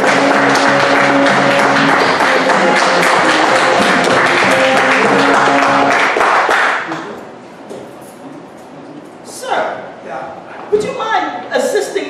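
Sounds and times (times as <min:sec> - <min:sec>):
music with held notes: 0:00.0 - 0:06.1
audience applauding: 0:00.0 - 0:07.1.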